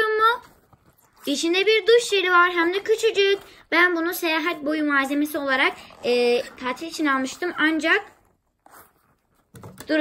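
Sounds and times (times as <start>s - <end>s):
rubber glove rustling: 0.1s - 9.7s.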